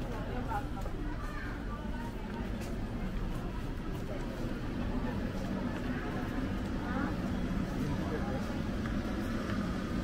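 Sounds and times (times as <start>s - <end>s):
indistinct voices of passers-by: 0.0s - 10.0s.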